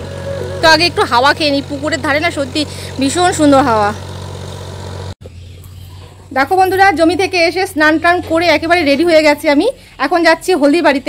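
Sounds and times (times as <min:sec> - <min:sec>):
distant tractor engine running: 0:00.0 - 0:10.8.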